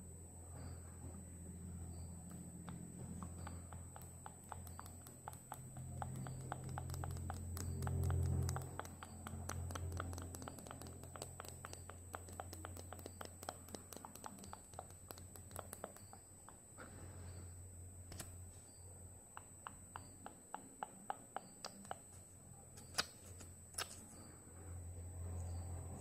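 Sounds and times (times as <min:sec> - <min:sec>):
fingers tapping microphone: 0:02.3 - 0:16.6, 0:19.4 - 0:22.2.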